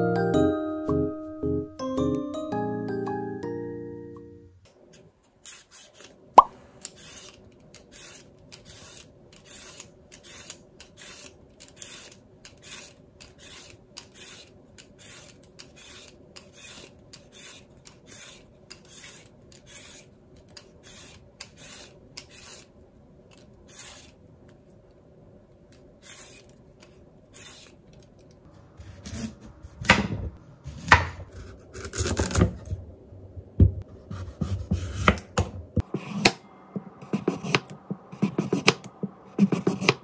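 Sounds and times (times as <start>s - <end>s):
peeler scraping a carrot: 5.4s - 6.2s, 6.8s - 24.2s, 26.0s - 27.9s.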